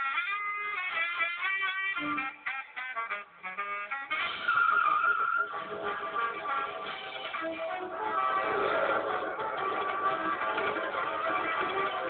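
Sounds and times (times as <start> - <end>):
background music: 0.0 - 12.0
car tyres squealing: 4.2 - 6.4.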